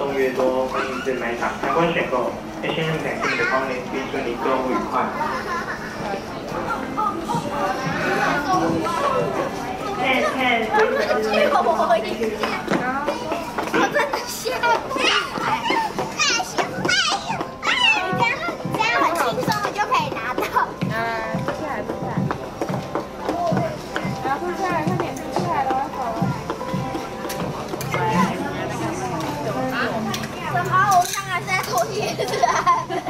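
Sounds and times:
background music: 0.0 - 33.0
children chattering and squealing: 0.0 - 33.0.

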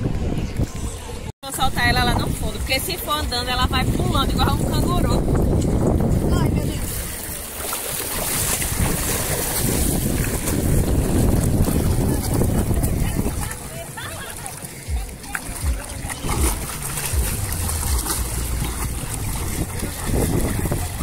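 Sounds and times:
wind on microphone: 0.0 - 13.8, 14.9 - 21.0
water splashing around wading legs: 5.4 - 21.0.

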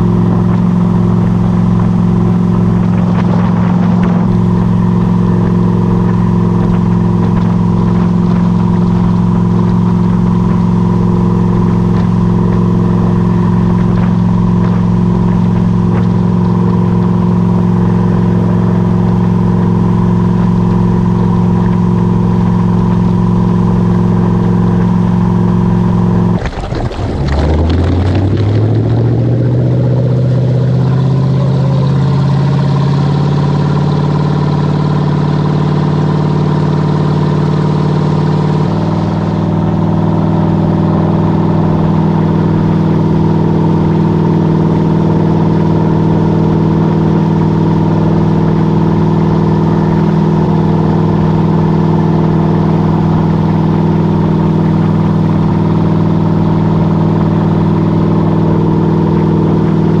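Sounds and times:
boat engine running: 0.0 - 60.0
wake churning: 25.9 - 30.9.

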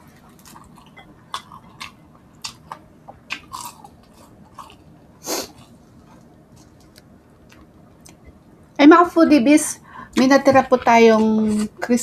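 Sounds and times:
crunchy chewing: 0.0 - 8.4.

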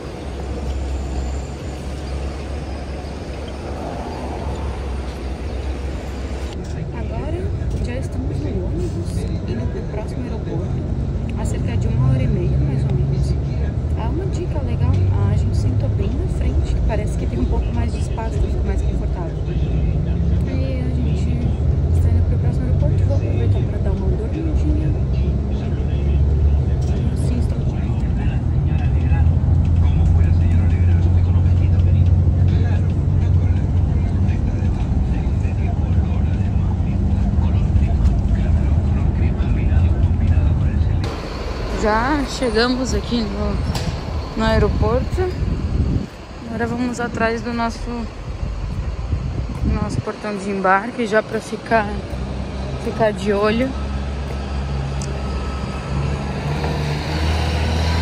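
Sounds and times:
bus engine and road rumble: 0.0 - 58.0.

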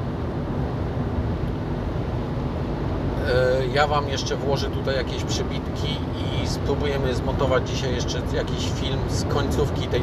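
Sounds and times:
car interior road rumble: 0.0 - 10.0.

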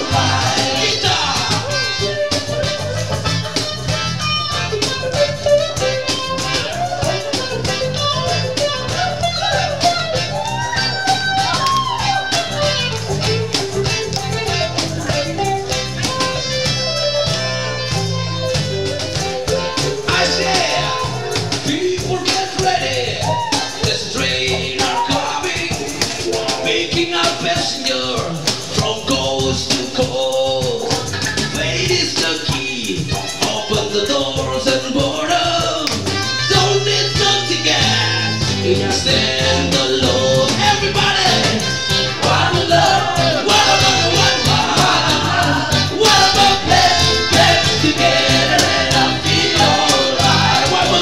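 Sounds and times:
guitar melody with bending notes: 0.0 - 22.0, 33.0 - 51.0
acoustic band playing reggae: 0.0 - 51.0
bass line: 0.0 - 51.0.

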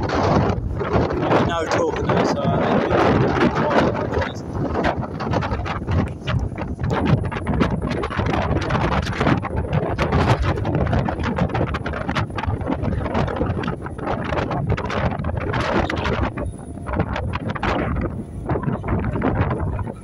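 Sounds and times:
low ferry rumble: 0.0 - 20.0
wind buffeting microphone: 0.0 - 20.0.

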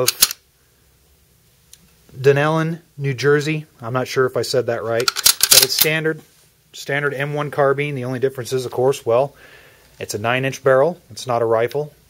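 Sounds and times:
sharp clicks: 0.0 - 0.4, 5.0 - 5.9.

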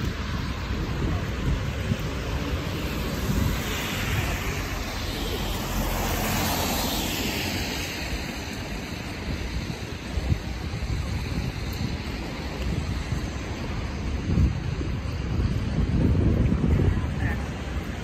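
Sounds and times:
low rumble of city traffic: 0.0 - 18.0
tyres hissing on wet asphalt: 0.0 - 18.0.

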